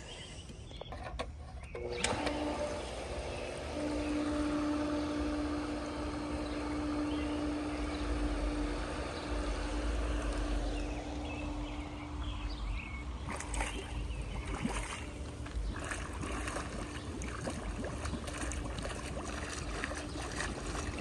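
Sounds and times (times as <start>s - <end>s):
pool pump motor hum: 0.0s - 21.0s
water rushing through pipes: 13.1s - 21.0s.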